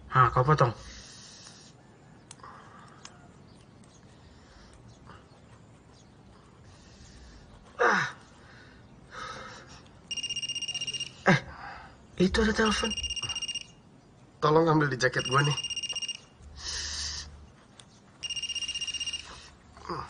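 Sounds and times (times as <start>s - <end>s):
mobile phone ringing: 10.1s - 11.3s, 12.5s - 13.8s, 15.0s - 16.4s, 18.2s - 19.5s.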